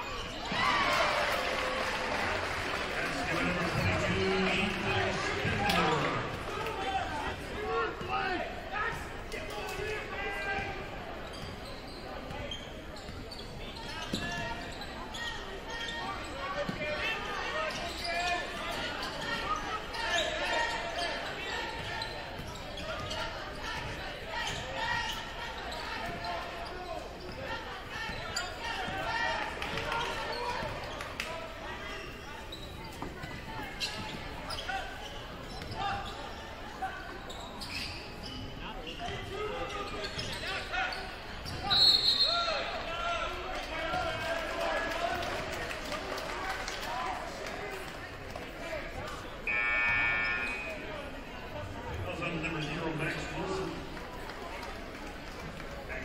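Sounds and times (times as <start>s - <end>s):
crowd chatter echoing: 0.0s - 56.0s.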